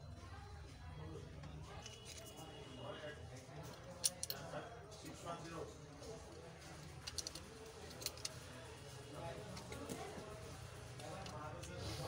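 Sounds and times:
fingers clicking phone parts: 0:03.8 - 0:04.4, 0:06.8 - 0:08.4.

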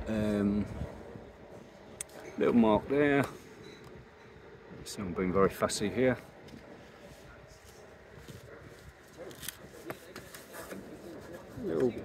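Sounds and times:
light handling noise: 0:06.2 - 0:12.0.

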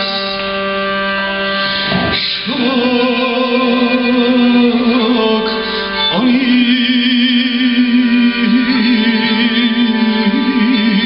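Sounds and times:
bowed fiddle and viola melody: 0:00.0 - 0:11.0.

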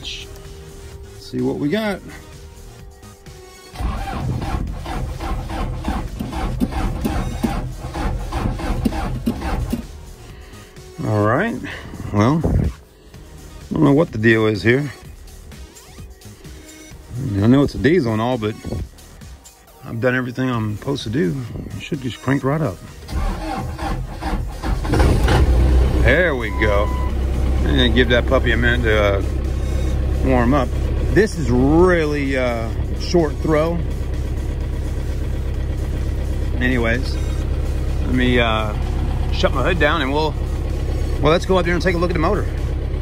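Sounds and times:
diesel engine cranking and starting: 0:00.0 - 0:43.0
engine starter cranking: 0:03.6 - 0:10.2, 0:22.9 - 0:29.8.

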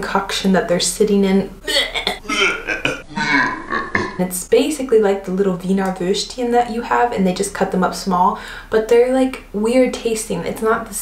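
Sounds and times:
woman gagging and retching: 0:01.6 - 0:04.2.

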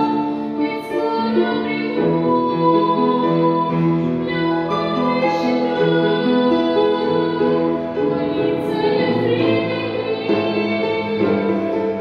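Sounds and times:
instrumental accompaniment: 0:00.0 - 0:12.0
woman singing into a microphone: 0:00.0 - 0:12.0.

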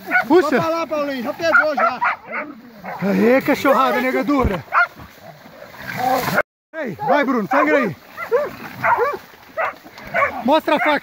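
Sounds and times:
hunting dogs barking: 0:00.0 - 0:00.7, 0:01.3 - 0:06.4, 0:07.0 - 0:11.0.

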